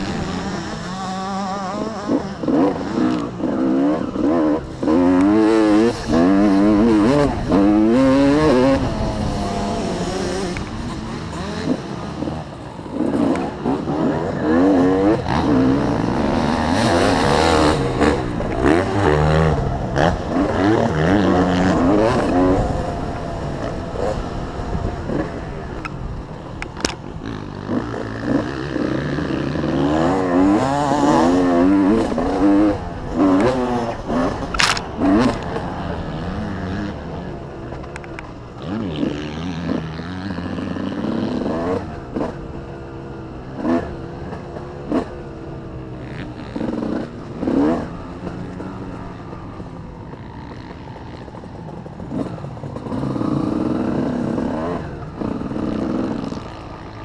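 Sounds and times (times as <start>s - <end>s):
motocross bike engine revving: 0.0s - 57.0s.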